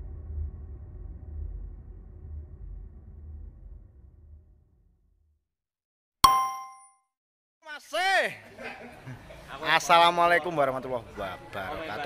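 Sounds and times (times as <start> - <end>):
bright metallic ding: 6.2 - 7.0.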